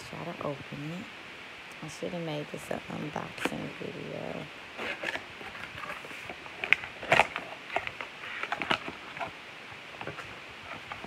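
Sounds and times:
cardboard packaging rustling: 0:04.8 - 0:11.0.

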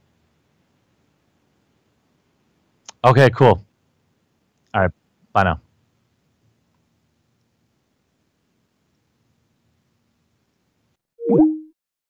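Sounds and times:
electronic call-ended bloop: 0:11.2 - 0:11.8.

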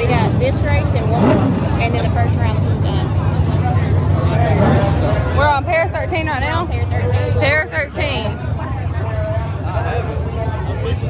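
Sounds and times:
people talking: 0:00.0 - 0:11.0
race cars idling: 0:00.0 - 0:11.0.

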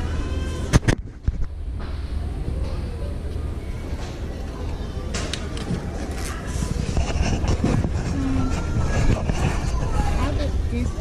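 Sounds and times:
faint voices: 0:02.0 - 0:11.0
steady low rumble: 0:05.8 - 0:11.0.

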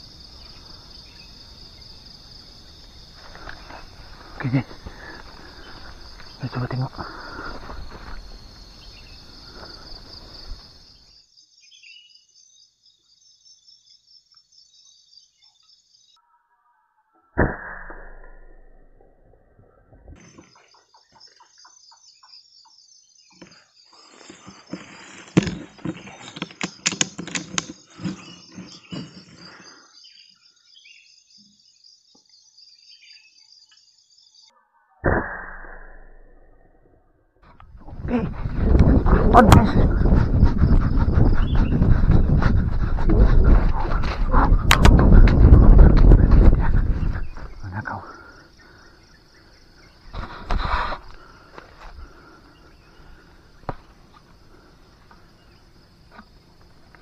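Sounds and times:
crickets chirping: 0:00.0 - 0:16.4, 0:19.8 - 0:34.6, 0:37.4 - 0:57.0.

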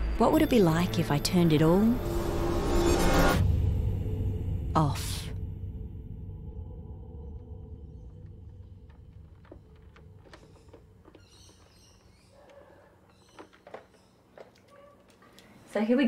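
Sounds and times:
low drone: 0:00.0 - 0:10.2
faint clicks: 0:08.2 - 0:15.6.

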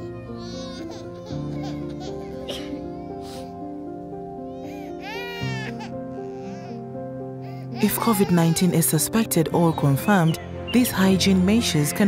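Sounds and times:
cartoon baby crying: 0:00.0 - 0:02.9, 0:04.6 - 0:06.8, 0:07.5 - 0:09.1
soft background music: 0:00.0 - 0:12.0.

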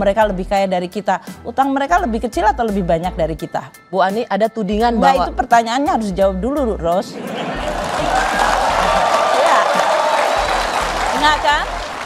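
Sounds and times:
music playing: 0:00.0 - 0:12.0
audience applauding and cheering: 0:07.3 - 0:12.0.

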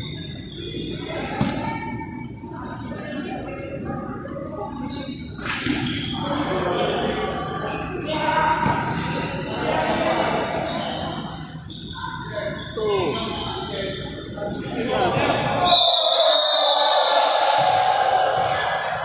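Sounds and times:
voices calling out echoing: 0:00.0 - 0:19.0.

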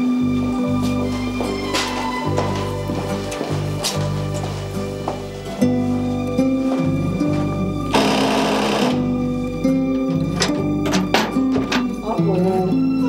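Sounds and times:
instrumental music with low notes: 0:00.0 - 0:13.0.

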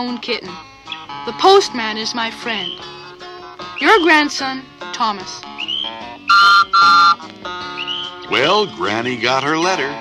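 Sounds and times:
soft guitar music: 0:00.0 - 0:10.0
shrill whistle blasts: 0:03.7 - 0:04.3, 0:05.6 - 0:07.2, 0:07.8 - 0:08.2.

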